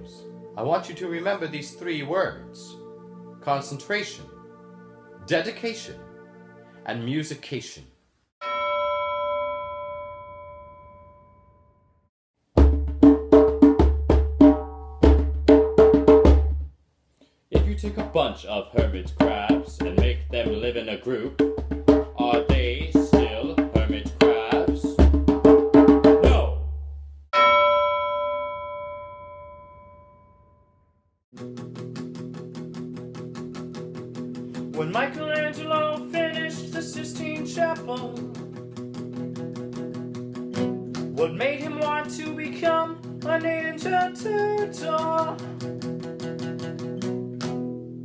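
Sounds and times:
struck bell ringing: 8.4s - 11.8s, 27.4s - 30.8s.

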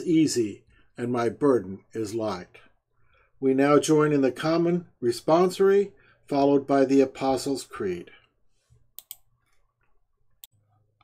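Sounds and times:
faint sharp clicks: 8.9s - 9.3s.

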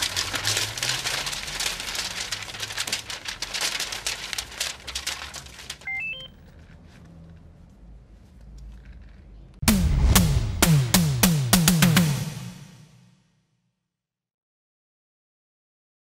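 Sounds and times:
banknotes rustling and fluttering: 0.0s - 9.6s
rising electronic beeps: 5.9s - 6.3s.

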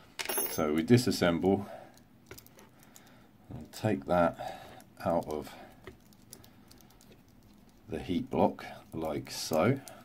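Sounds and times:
small clicks and taps of metal parts: 1.9s - 3.9s, 4.7s - 8.0s, 8.8s - 10.0s.

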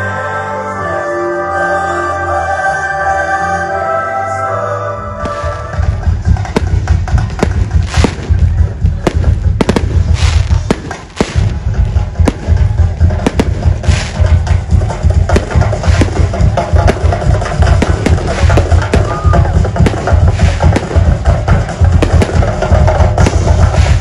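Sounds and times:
music playing: 0.0s - 24.0s
fireworks bursting with sharp bangs: 5.2s - 24.0s.

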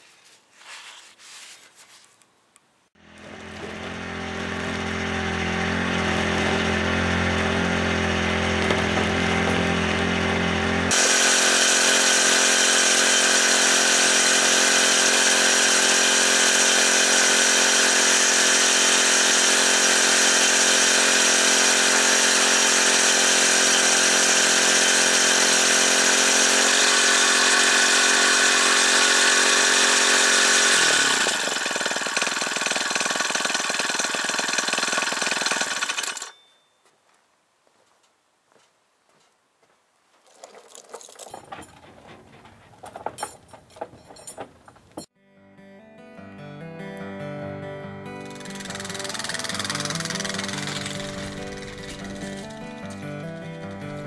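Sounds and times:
small winch engine running: 3.0s - 36.4s, 48.2s - 52.9s.

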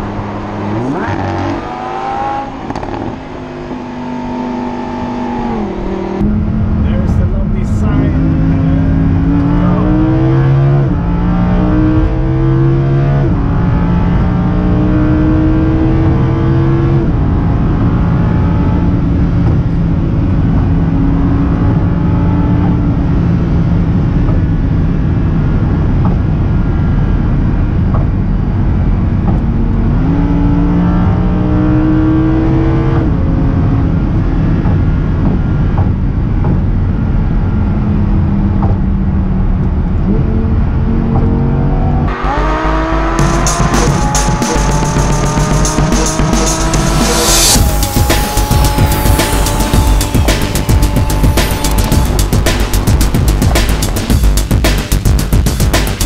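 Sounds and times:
car engine at full throttle: 0.0s - 56.0s
road and wind noise: 0.0s - 56.0s.

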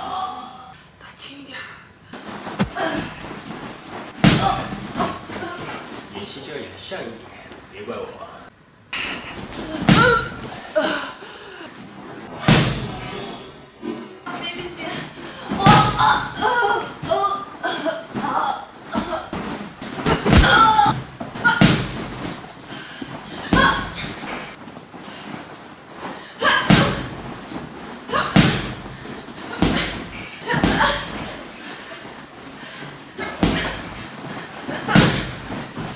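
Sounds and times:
boxing glove punches: 2.6s - 2.8s, 20.0s - 22.1s.

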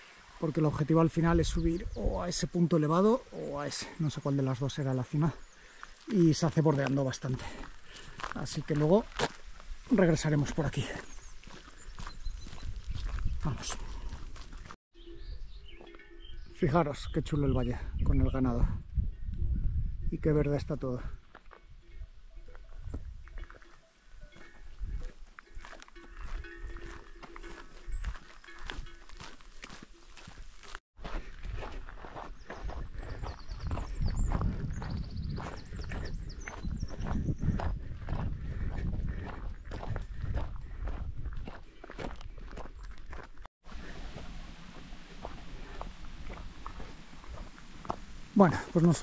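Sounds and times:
footsteps on dirt track: 3.4s - 14.8s, 21.0s - 21.8s, 22.4s - 49.0s
wind on microphone: 11.0s - 16.5s, 17.1s - 29.3s, 31.2s - 42.9s, 43.7s - 48.4s.

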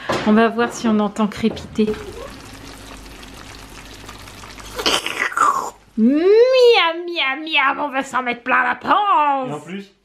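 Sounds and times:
baked dish crackling and sizzling: 0.4s - 7.6s.

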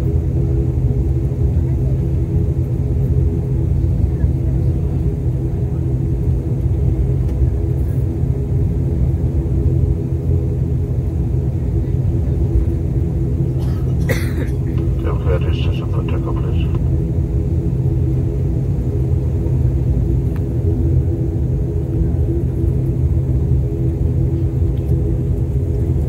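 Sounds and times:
turboprop engines droning: 0.0s - 26.0s.

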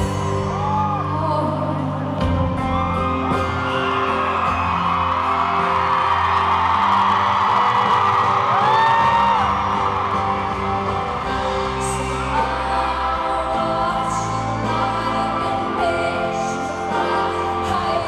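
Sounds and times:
woman singing: 0.0s - 2.6s, 11.3s - 18.0s
acoustic guitar ballad: 0.0s - 18.0s
audience cheering and screaming: 0.0s - 18.0s.

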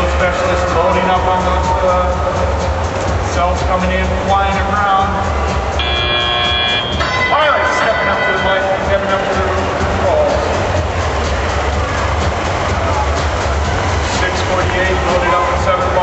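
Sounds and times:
crowd voices: 0.0s - 16.0s
music over pa system: 0.0s - 16.0s
steady multi-tone sound: 4.7s - 16.0s.

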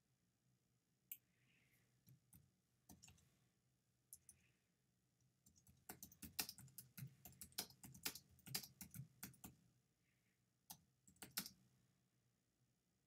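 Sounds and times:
computer keyboard typing: 2.3s - 3.2s, 5.4s - 9.6s, 10.7s - 11.6s.

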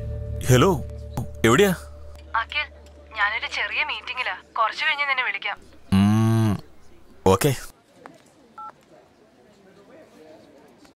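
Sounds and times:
short loud vocal sound: 5.9s - 6.7s.

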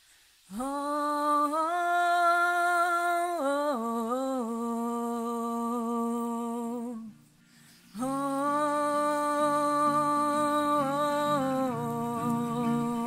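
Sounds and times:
person humming: 8.0s - 13.0s.

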